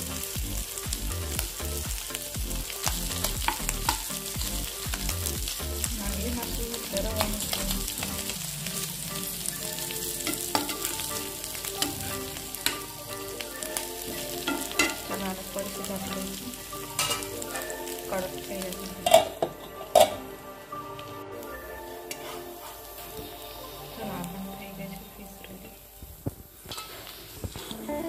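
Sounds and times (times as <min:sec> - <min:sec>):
fish sizzling in a pan: 0:00.0 - 0:28.0
metal spatula scraping pan: 0:07.9 - 0:13.0, 0:14.3 - 0:15.2, 0:16.8 - 0:17.8, 0:19.0 - 0:20.3, 0:22.0 - 0:23.5, 0:26.6 - 0:27.7.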